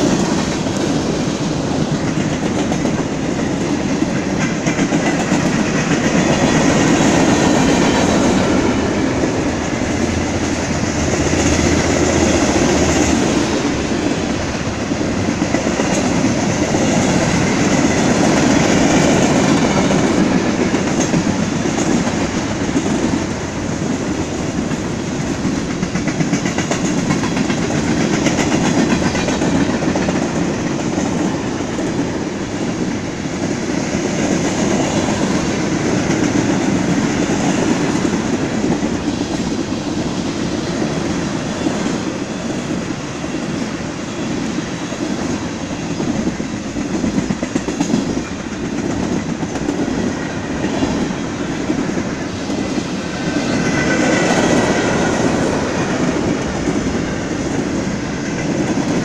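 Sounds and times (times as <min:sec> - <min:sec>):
steel wheels on rail: 0:00.0 - 0:59.0.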